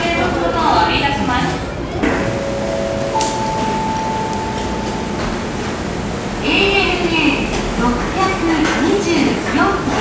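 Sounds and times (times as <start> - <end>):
terminal background hum: 0.0 - 10.0
public address chime: 2.1 - 6.9.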